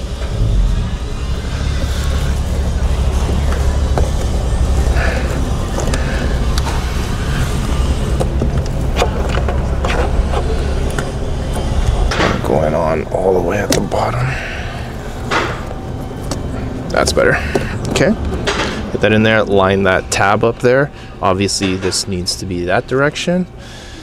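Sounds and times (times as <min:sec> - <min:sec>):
steady low rumble: 0:00.0 - 0:16.9.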